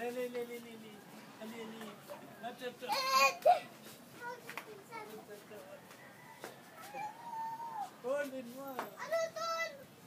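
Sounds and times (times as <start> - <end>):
child's high vocal call: 6.8 - 8.0, 9.0 - 9.9.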